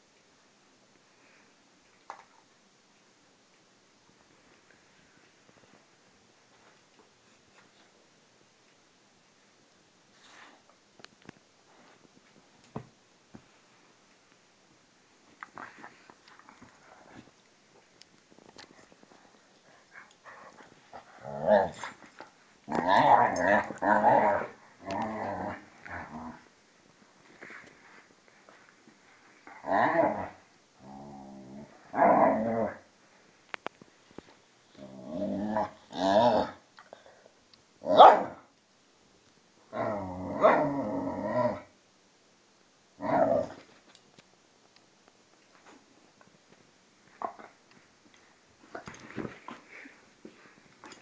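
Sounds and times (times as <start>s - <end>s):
dogs growling: 22.7s - 26.5s
dog barking: 37.9s - 38.4s.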